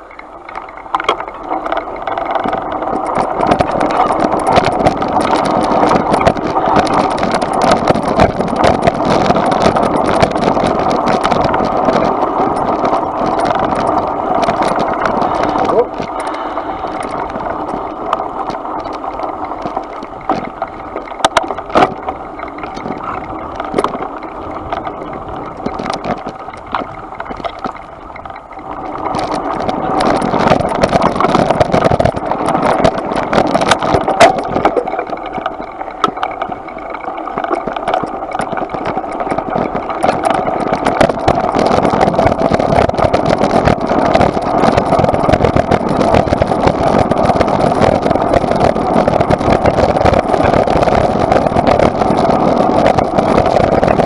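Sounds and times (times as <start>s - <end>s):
bike rattling and knocking: 0.0s - 54.0s
bike tyres on dirt and gravel: 0.0s - 54.0s.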